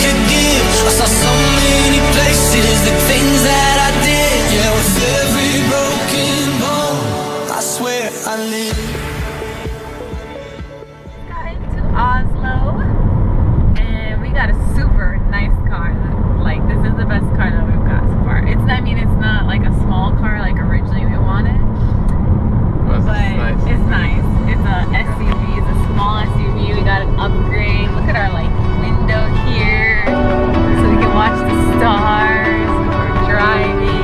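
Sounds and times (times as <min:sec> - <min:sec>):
music: 0:00.0 - 0:12.9, 0:23.1 - 0:34.0
woman speaking: 0:11.2 - 0:13.0, 0:13.8 - 0:21.9, 0:23.0 - 0:34.0
car cabin road and engine noise: 0:11.3 - 0:34.0.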